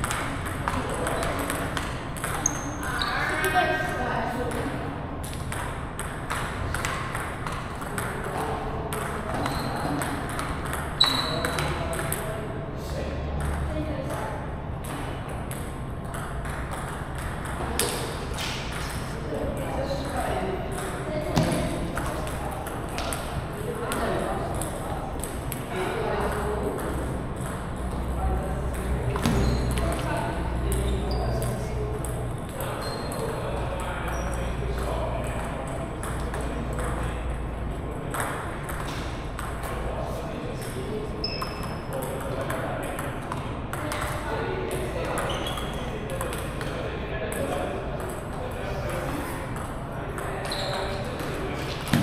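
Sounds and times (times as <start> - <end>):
table tennis balls clicking: 0.0 - 3.0, 4.5 - 12.3, 14.8 - 19.1, 20.7 - 34.2, 38.0 - 40.0.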